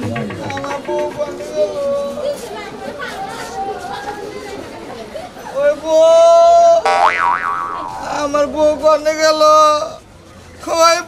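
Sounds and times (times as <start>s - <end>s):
cartoon boing sound effect: 6.9s - 8.2s.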